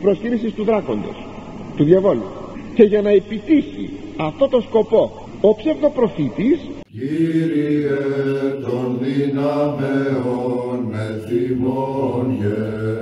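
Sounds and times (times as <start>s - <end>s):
slow chant in low voices: 6.9s - 13.0s.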